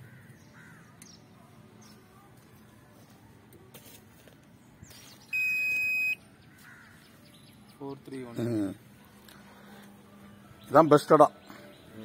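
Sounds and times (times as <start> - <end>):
high-pitched electronic beep: 5.3 - 6.2.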